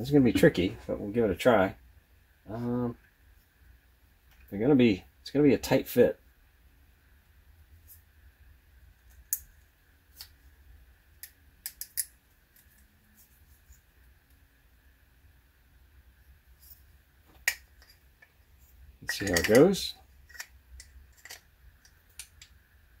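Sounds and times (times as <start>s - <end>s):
light clicks and taps of handling: 19.0s - 22.6s.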